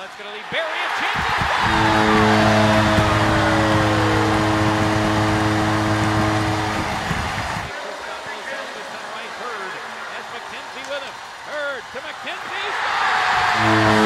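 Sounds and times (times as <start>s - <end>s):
crowd cheering: 0.0s - 14.0s
goal horn low chord: 1.6s - 7.7s, 13.5s - 14.0s.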